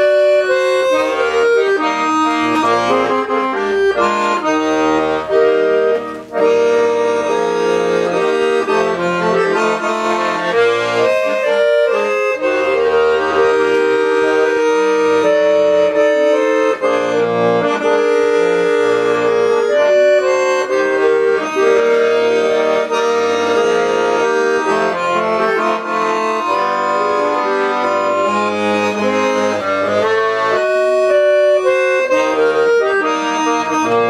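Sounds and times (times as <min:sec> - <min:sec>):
accordion playing a tune: 0:00.0 - 0:34.0.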